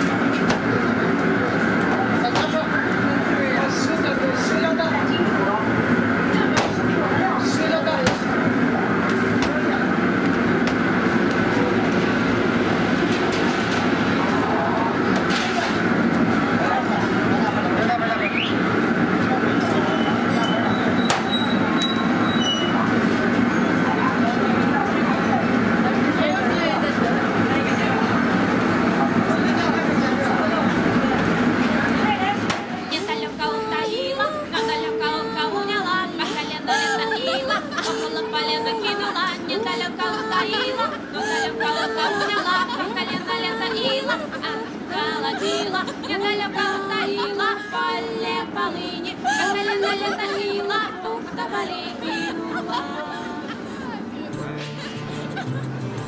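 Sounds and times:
people talking: 0.0s - 10.4s, 13.0s - 55.6s.

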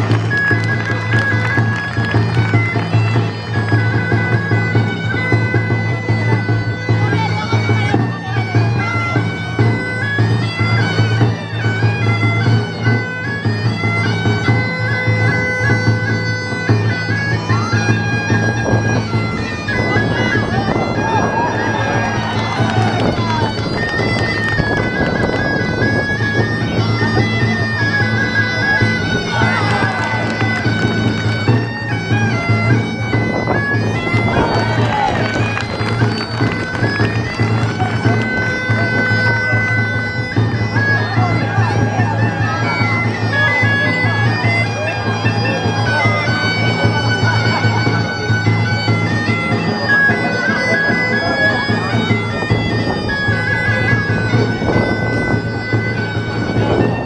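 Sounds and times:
bagpipe dance tune with drone: 0.0s - 57.0s
drum beating: 0.0s - 57.0s.

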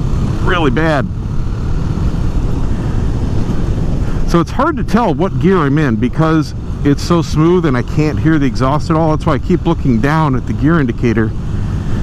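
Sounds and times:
wind and road noise rumble: 0.0s - 12.0s.

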